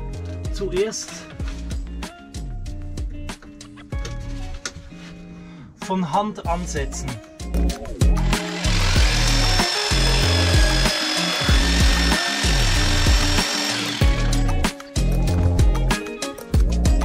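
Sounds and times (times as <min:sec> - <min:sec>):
background music: 0:00.0 - 0:17.0
jigsaw cutting wood: 0:08.2 - 0:14.5.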